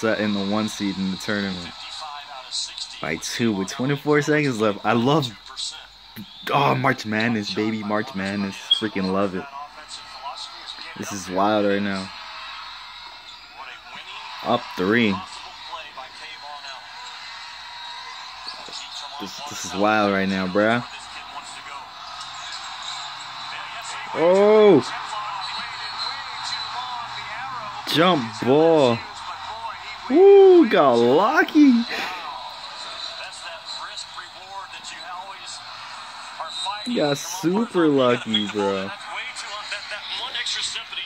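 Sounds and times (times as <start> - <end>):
commentator talking through phone speaker: 0.0 - 12.1, 18.6 - 22.6, 23.4 - 35.7, 36.4 - 41.0
arena crowd noise: 0.0 - 41.0.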